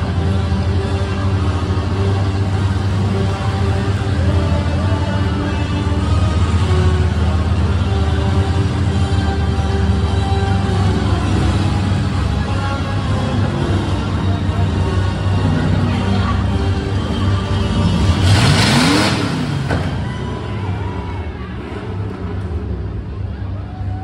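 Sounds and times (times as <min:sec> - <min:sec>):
music over loudspeakers: 0:00.0 - 0:19.6
engine revving: 0:00.0 - 0:20.6
truck engines running: 0:00.0 - 0:24.0.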